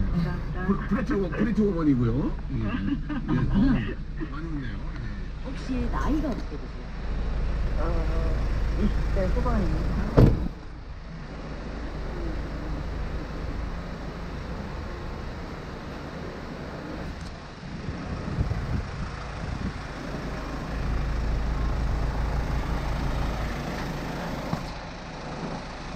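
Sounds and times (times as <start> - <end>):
car engine idling: 0.0 - 25.9.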